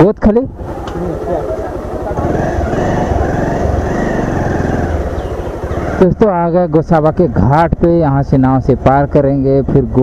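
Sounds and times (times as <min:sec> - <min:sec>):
motorcycle engine running: 0:00.5 - 0:09.4.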